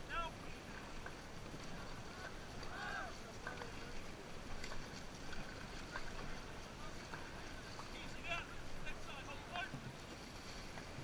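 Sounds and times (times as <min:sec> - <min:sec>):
water rushing: 0:00.0 - 0:11.0
faint voices: 0:02.6 - 0:05.0.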